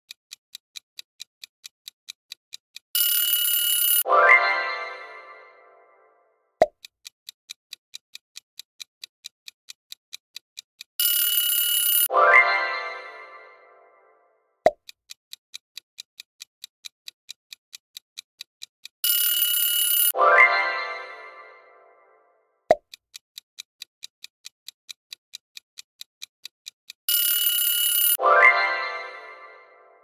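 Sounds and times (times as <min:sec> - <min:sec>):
clock ticking quickly: 0:00.0 - 0:05.0, 0:06.6 - 0:13.1, 0:14.7 - 0:21.2, 0:22.7 - 0:29.6
alarm clock bell ringing: 0:03.0 - 0:06.1, 0:11.0 - 0:13.9, 0:19.0 - 0:22.1, 0:27.1 - 0:30.0
short musical chime: 0:04.0 - 0:06.1, 0:20.2 - 0:22.2, 0:28.2 - 0:30.0.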